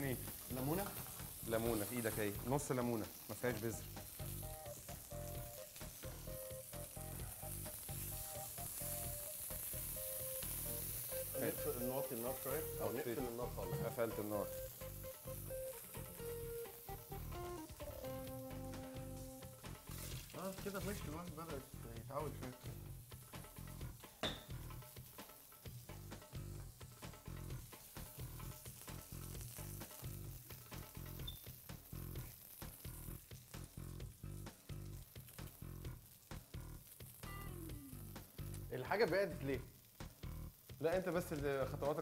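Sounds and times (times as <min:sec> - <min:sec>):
background music: 0:00.0 - 0:42.0
fish sizzling in a frying pan: 0:00.0 - 0:42.0.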